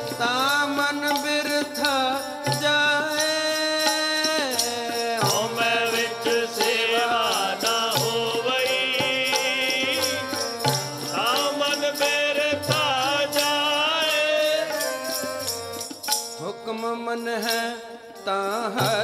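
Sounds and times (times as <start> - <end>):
harmonium drone: 0.0 - 19.0
percussion beat: 0.0 - 19.0
man singing hymns: 0.1 - 15.5, 16.4 - 19.0.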